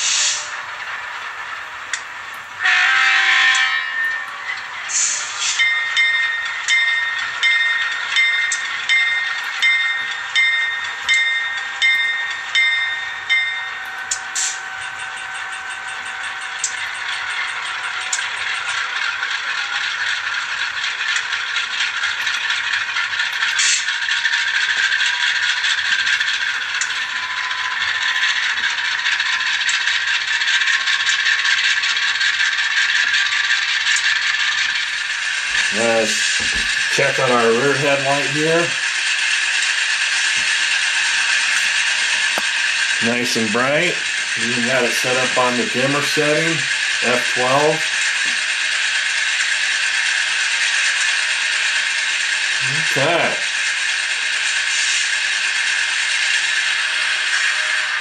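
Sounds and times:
model locomotive bell ringing: 2.6s - 58.0s
tinny diesel engine sound: 32.1s - 58.0s.

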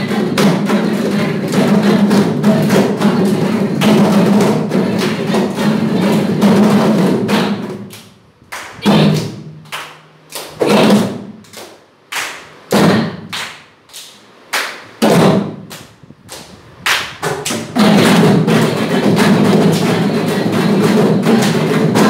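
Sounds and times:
drum strokes: 0.0s - 7.9s, 15.0s - 15.7s, 17.2s - 22.0s.

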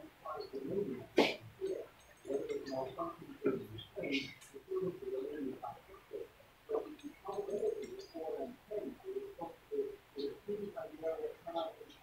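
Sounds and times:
birds cooing: 0.0s - 12.0s.

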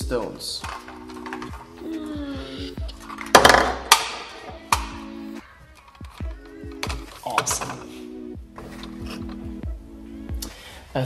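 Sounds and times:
background music: 0.0s - 11.0s
plastic toy knocks: 3.3s - 4.2s.

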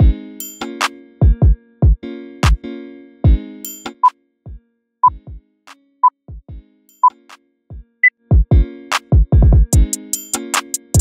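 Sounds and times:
electronic kick drum beat: 1.2s - 2.6s, 6.3s - 6.6s, 7.7s - 11.0s.

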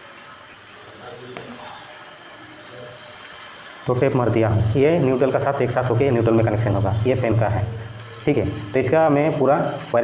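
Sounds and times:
man speaking: 3.9s - 10.0s.

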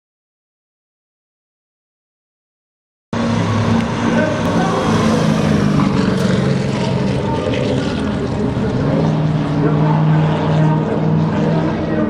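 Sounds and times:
car engine running: 3.2s - 12.0s.

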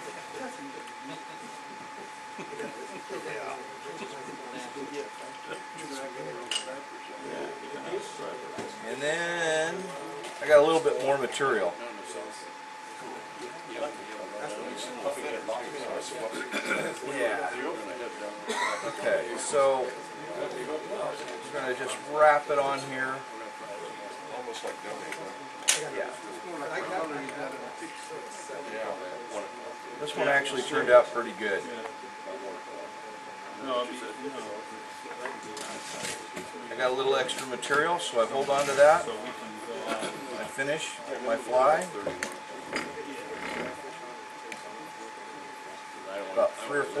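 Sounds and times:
faint murmured speech: 0.0s - 47.0s
faint voices: 0.0s - 47.0s.

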